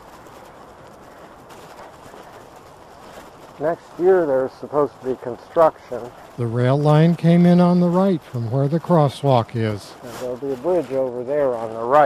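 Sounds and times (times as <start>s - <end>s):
bicycle tyres rolling on gravel: 0.0s - 12.0s.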